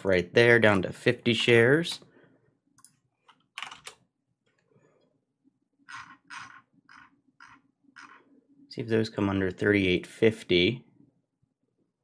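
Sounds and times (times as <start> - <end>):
keyboard typing: 2.8 - 4.0, 5.8 - 8.3.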